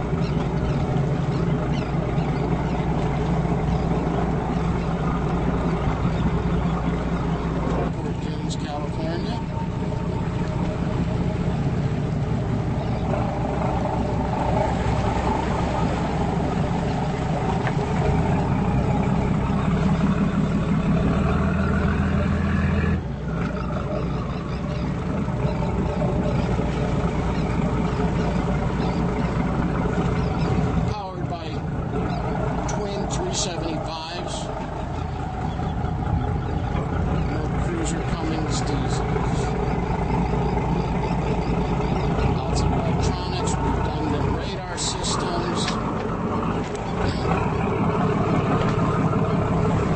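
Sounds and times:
motorboat engines running: 0.0 - 49.9.

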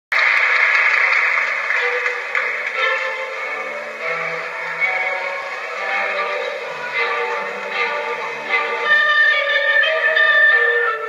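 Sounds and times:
faint music tones: 0.2 - 11.0.

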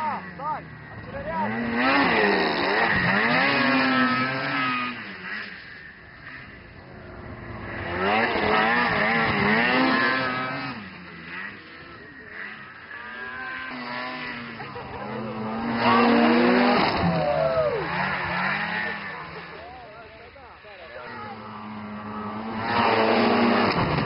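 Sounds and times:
snowmobile engines revving: 0.0 - 24.0.

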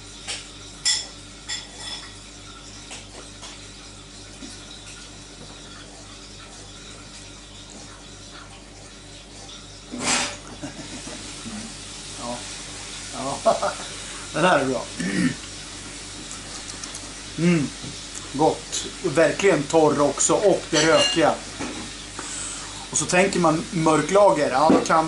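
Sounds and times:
swallowing clicks: 16.2 - 17.1.

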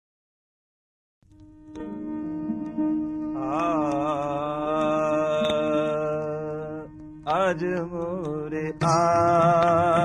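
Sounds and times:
harmonium chord: 1.4 - 4.0.

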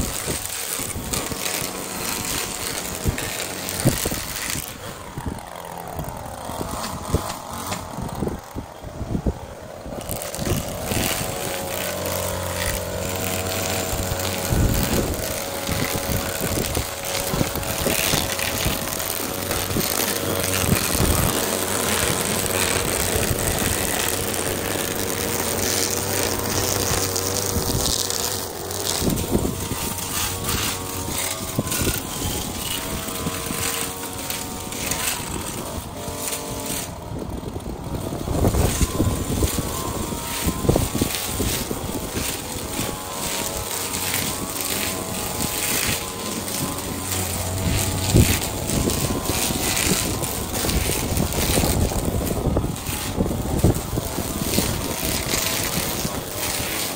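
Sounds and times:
string trimmer cutting grass: 0.0 - 56.9.

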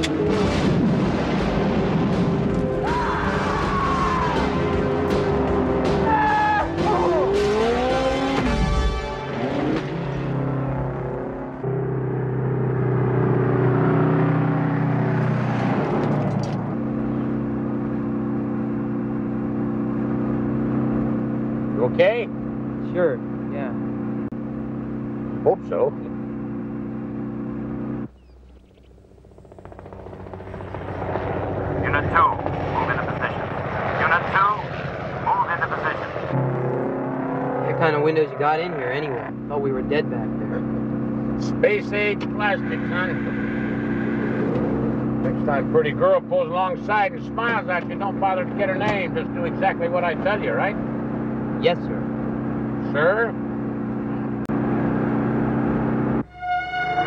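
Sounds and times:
soundtrack music: 0.4 - 10.2, 56.3 - 57.0
heavy truck engine running: 8.5 - 34.0, 38.5 - 57.0.

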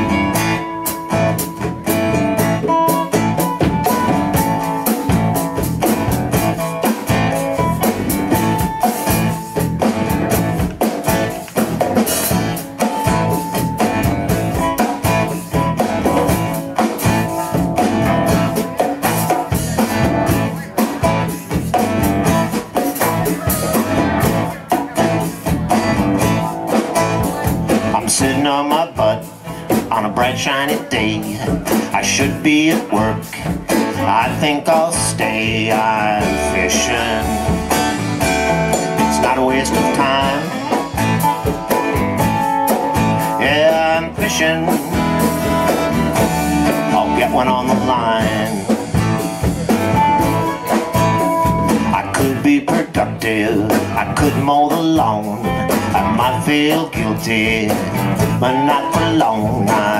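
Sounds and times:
electric guitar: 0.0 - 59.9
live blues-rock band: 0.0 - 59.9.

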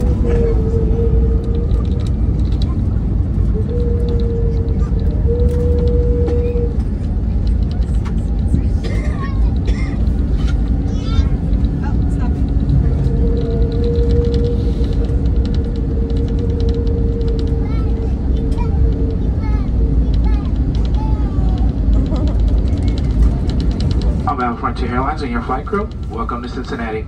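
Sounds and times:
airplane cabin rumble: 0.0 - 27.0
steady whine: 0.0 - 27.0.

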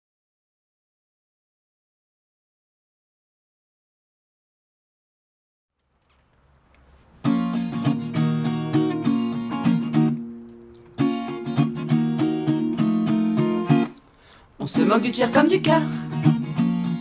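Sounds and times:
acoustic guitar strumming: 7.1 - 17.0.

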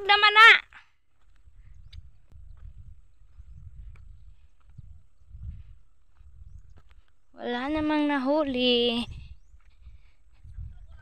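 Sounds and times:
footsteps on dry soil: 0.0 - 11.0
wind rumble on microphone: 1.2 - 11.0.

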